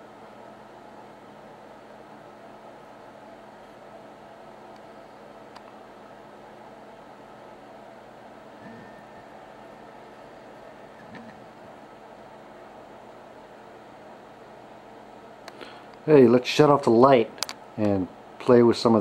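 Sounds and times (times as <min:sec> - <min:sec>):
low electrical hum with hiss: 0:00.0 - 0:19.0.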